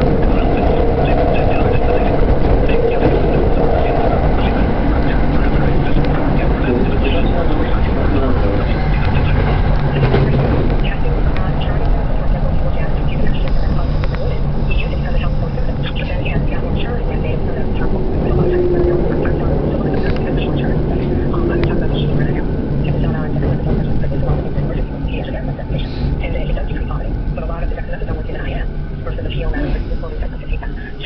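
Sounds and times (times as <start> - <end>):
train motor hum: 0.0 - 31.0
train rumble inside carriage: 0.0 - 31.0.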